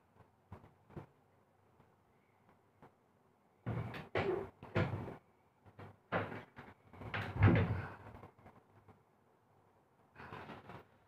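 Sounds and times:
knocking and scraping: 3.6s - 8.9s.

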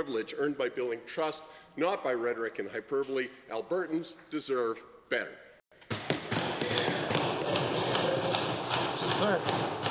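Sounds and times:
people thumping wooden desks: 5.9s - 9.9s.

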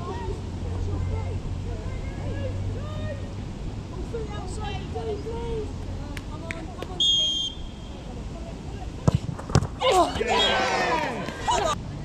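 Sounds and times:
referee's whistle: 7.0s - 7.8s
football being kicked: 9.0s - 9.8s
players laughing and shouting: 9.8s - 11.8s.

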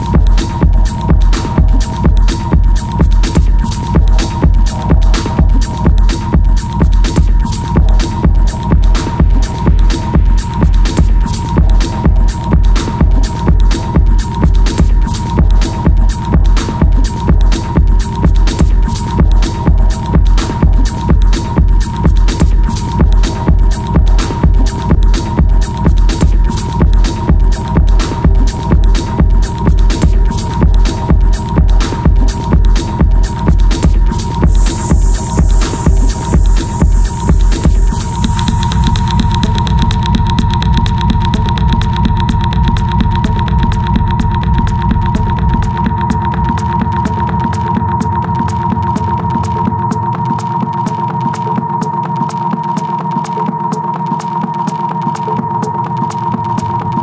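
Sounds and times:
hi-hat ticks: 0.0s - 57.0s
pounding kick drum: 0.0s - 57.0s.

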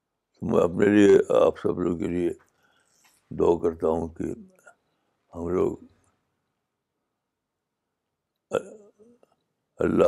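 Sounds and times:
man speaking: 0.4s - 2.4s, 3.3s - 4.6s, 5.4s - 5.9s, 8.5s - 8.9s, 9.8s - 10.0s
mouth noises: 8.5s - 9.2s
man clearing throat: 8.6s - 8.9s.

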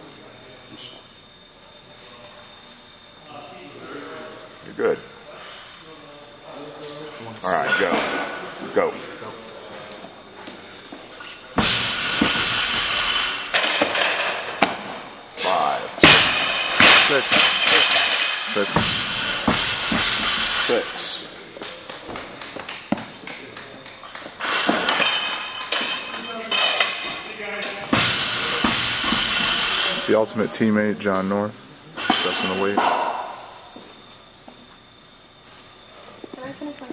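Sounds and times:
gym noise: 11.5s - 30.1s.

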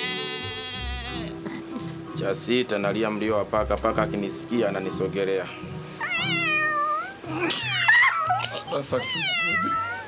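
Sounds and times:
man imitating cat meows: 0.0s - 1.4s, 6.0s - 10.0s.

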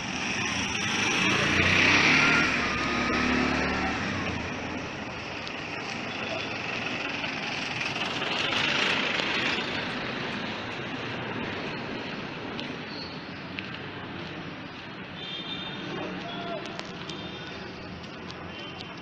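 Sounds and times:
street traffic noise: 0.0s - 19.0s
car driving past: 0.2s - 4.8s.

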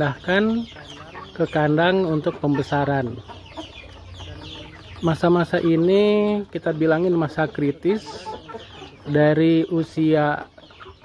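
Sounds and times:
chickens calling softly: 0.0s - 11.0s
low chicken cluck: 0.0s - 11.0s.

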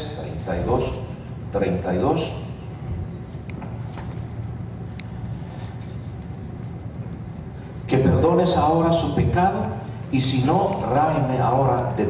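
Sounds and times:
low hum of room tone: 0.0s - 12.0s.

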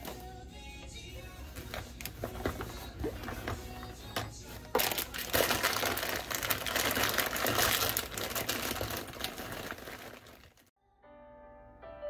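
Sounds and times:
fabric bag rustling and crinkling: 1.4s - 10.7s.

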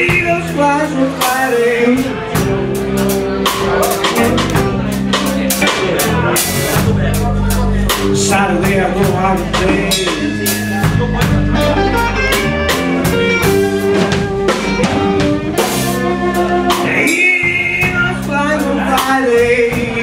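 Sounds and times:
drum kit beat: 0.0s - 20.0s
electric bass: 0.0s - 20.0s
electric guitars: 0.0s - 20.0s.

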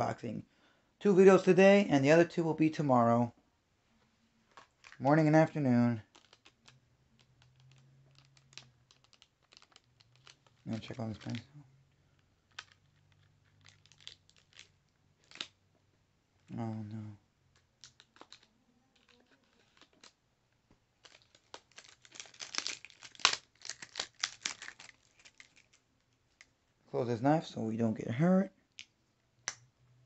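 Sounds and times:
packaging crinkling and crackling: 4.5s - 5.0s, 6.0s - 15.6s, 17.5s - 20.2s, 20.9s - 26.6s.

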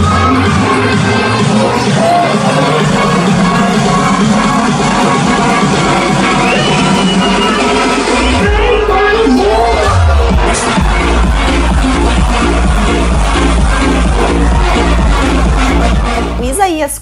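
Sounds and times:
loud electronic dance music: 0.0s - 17.0s.

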